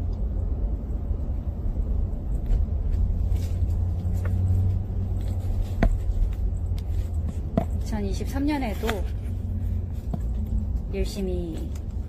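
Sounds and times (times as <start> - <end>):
car rumble from inside cabin: 0.0 - 12.0.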